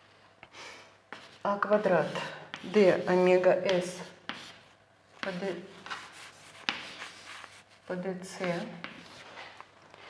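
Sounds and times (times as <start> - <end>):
chalk scratching on blackboard: 1.1 - 9.5
chalk tap on blackboard: 6.6 - 7.0.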